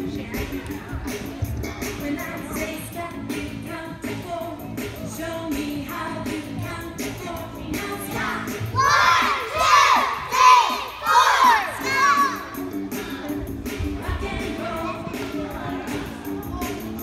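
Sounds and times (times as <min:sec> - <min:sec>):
pop music with steady beat: 0:00.0 - 0:17.0
children shouting together: 0:08.8 - 0:12.6.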